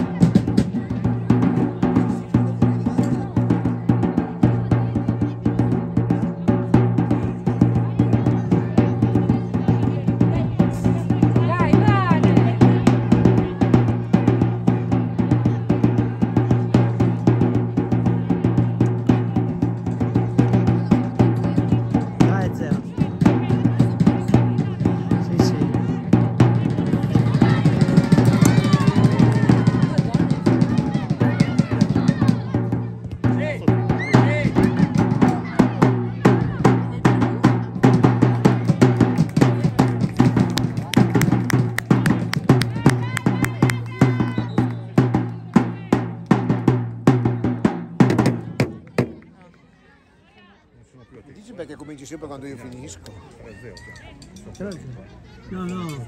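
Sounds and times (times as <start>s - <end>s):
voices: 0.0s - 46.4s, 47.2s - 56.0s
fast heavy drumming: 0.0s - 49.3s.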